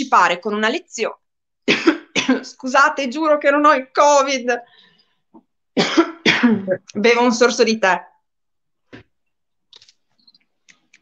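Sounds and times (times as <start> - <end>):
woman coughing and laughing: 1.6 - 2.6, 5.8 - 6.9.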